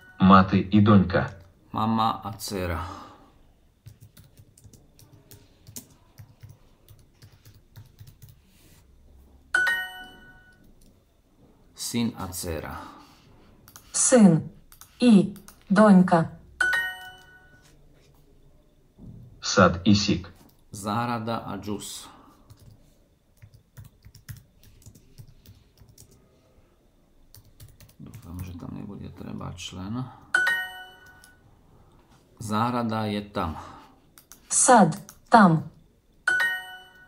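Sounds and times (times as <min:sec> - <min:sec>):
faint keyboard keystrokes: 0:03.8 - 0:08.4
bright ringing chime: 0:09.5 - 0:10.6, 0:16.6 - 0:17.7, 0:30.3 - 0:31.4, 0:36.3 - 0:37.0.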